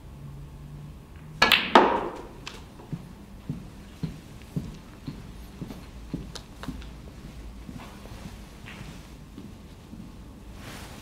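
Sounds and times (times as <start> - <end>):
cue tip striking ball: 1.2 - 3.0
sharp knock of balls colliding: 1.4 - 2.4.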